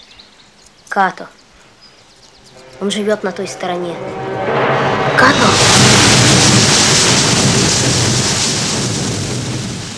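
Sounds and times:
loud rushing noise with rumble: 2.4 - 9.9.

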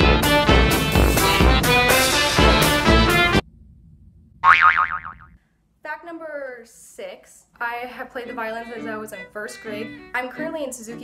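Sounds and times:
cartoon boing: 4.4 - 5.4.

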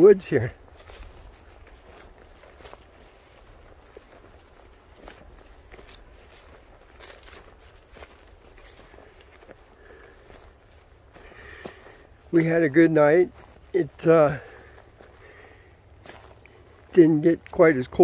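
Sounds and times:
footsteps on dry grass: 0.0 - 18.0.

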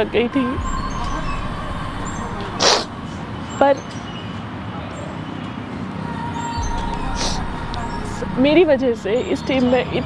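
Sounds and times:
woman sniffing: 2.6 - 2.9.

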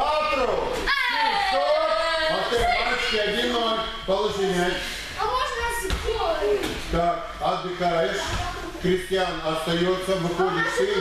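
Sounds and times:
children calling and shouting: 0.7 - 3.8, 5.1 - 6.8, 10.3 - 11.0.

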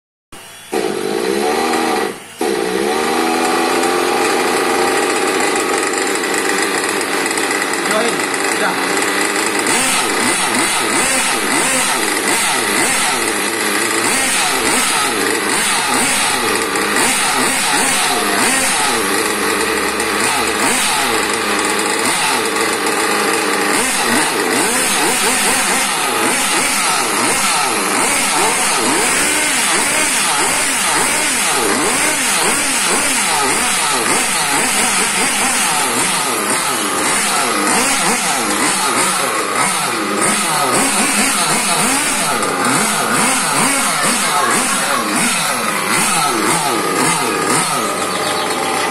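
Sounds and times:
model car engine buzzing: 0.4 - 48.9.

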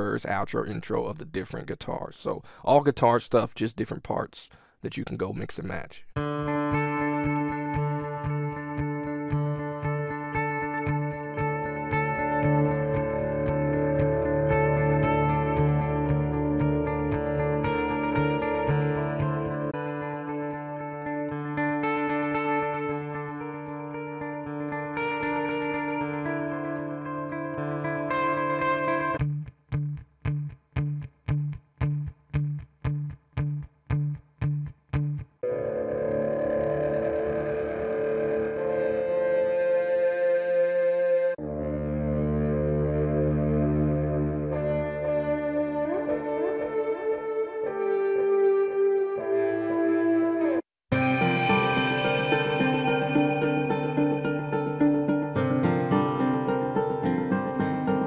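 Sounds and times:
ambient guitar loops: 6.2 - 48.6, 50.9 - 58.0.

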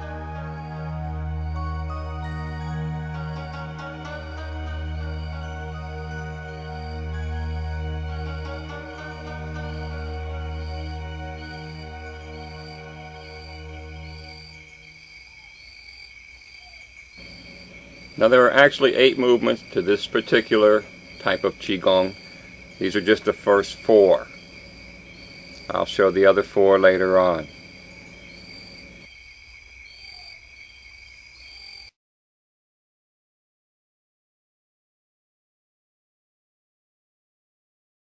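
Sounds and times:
soft new-age music: 0.0 - 14.9
steady high drone: 0.0 - 15.0, 17.2 - 29.1
insects chirping: 0.0 - 32.0.

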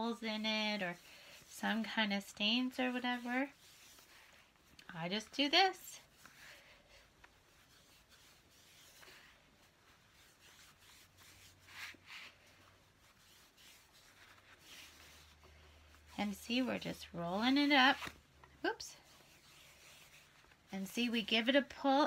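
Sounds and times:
fabric strips rustling: 0.0 - 22.0.

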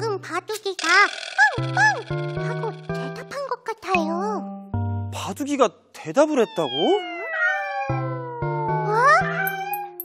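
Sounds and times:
cartoon cat meow: 6.3 - 10.0.

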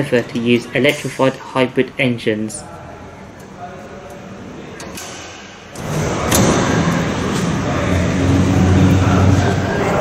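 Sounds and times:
low mechanical hum: 0.0 - 10.0
car bonnet shutting: 4.9 - 7.4.

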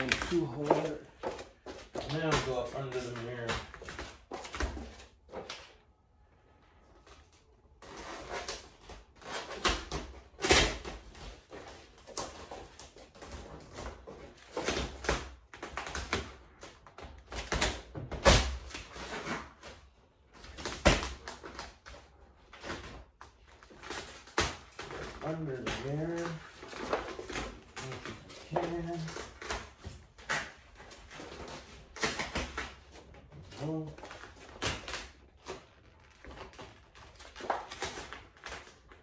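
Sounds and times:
vinyl film rustling and crackling: 0.0 - 39.0.

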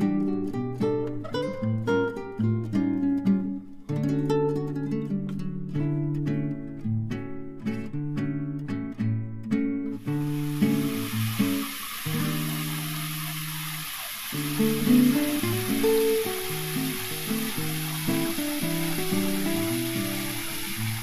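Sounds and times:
plucked acoustic guitar music: 0.0 - 21.0
waterfall splashing into pond: 10.0 - 21.0.

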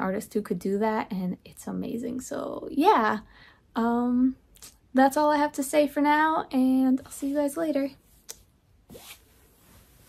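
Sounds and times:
short rustling swish: 8.1 - 10.0.

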